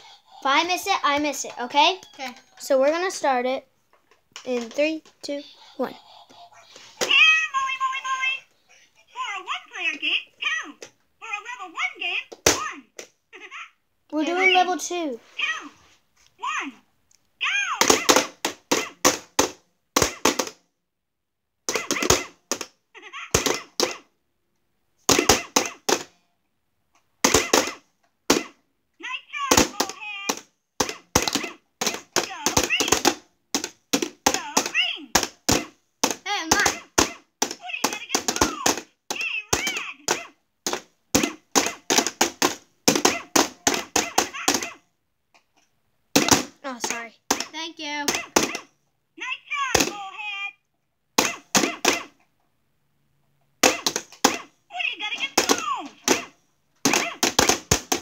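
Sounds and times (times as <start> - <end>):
plastic mallets tapping: 25.0 - 26.1, 27.2 - 28.5, 29.5 - 44.7, 46.1 - 48.7, 53.6 - 54.5, 55.2 - 58.0.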